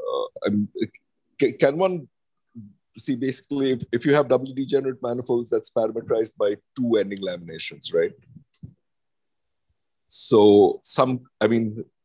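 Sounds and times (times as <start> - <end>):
man's voice: 3.0 - 8.4.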